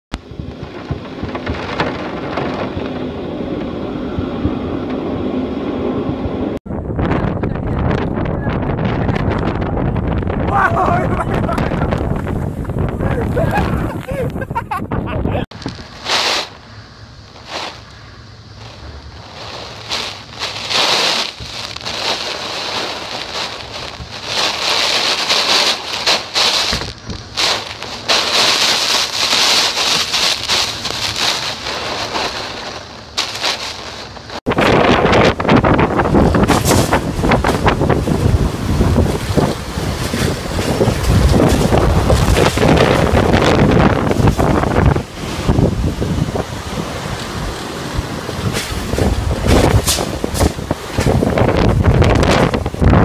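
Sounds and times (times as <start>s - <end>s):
storm wind gusting: 0.1s - 53.0s
rain spattering: 17.3s - 53.0s.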